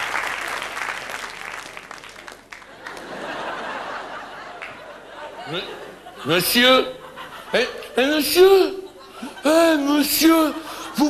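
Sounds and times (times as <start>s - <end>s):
audience laughing: 2.7s - 11.0s.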